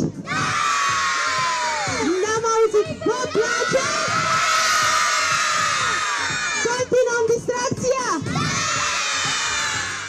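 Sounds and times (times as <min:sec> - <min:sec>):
children shouting and cheering: 0:00.1 - 0:06.9, 0:08.2 - 0:10.0.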